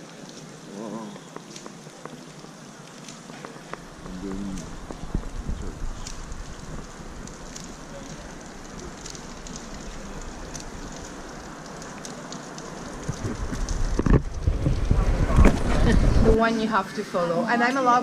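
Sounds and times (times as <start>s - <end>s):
light rain on stone street: 0.0s - 18.0s
wind buffeting microphone: 3.7s - 16.7s.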